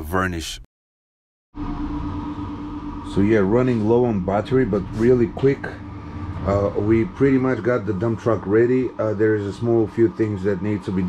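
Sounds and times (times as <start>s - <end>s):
steady mechanical hum: 1.6s - 11.0s.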